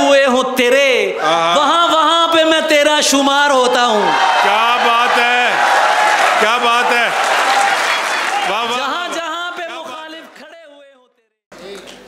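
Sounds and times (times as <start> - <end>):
audience applauding: 4.0 - 10.6.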